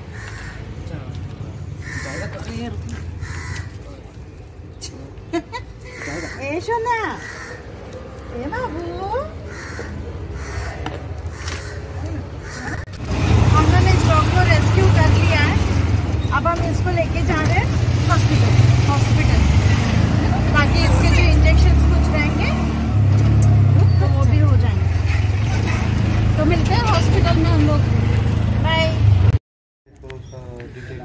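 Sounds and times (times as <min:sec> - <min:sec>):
auto-rickshaw engine droning: 0:11.3 - 0:29.4.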